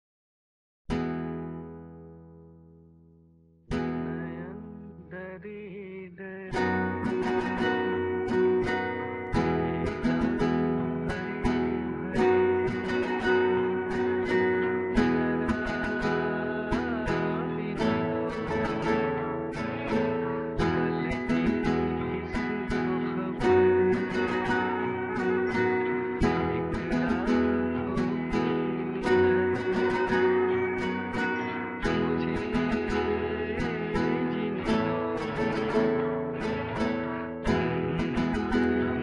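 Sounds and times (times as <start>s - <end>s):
acoustic guitar strumming: 0.9s - 3.0s, 3.7s - 39.0s.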